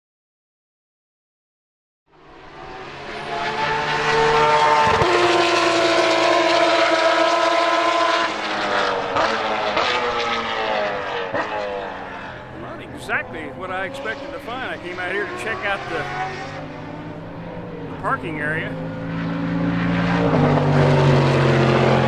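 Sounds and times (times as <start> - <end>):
engines droning: 2.1 - 22.0.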